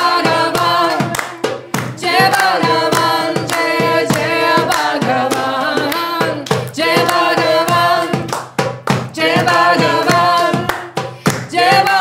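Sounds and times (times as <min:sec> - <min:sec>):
group singing devotional chant: 0:00.0 - 0:12.0
hand drum strikes: 0:00.0 - 0:12.0.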